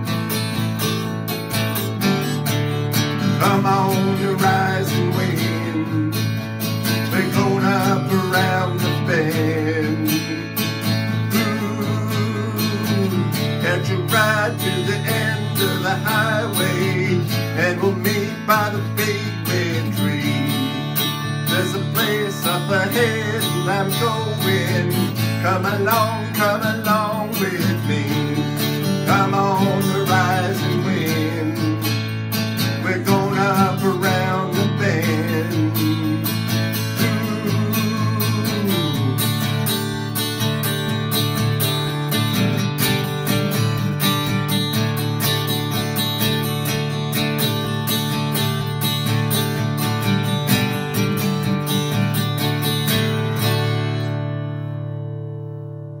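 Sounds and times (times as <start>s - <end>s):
acoustic guitar strumming: 0.0s - 56.0s
person singing: 3.2s - 40.0s.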